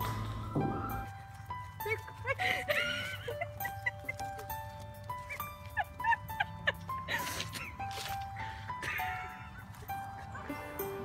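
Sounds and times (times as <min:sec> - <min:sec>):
background music with held notes: 0:00.0 - 0:11.0.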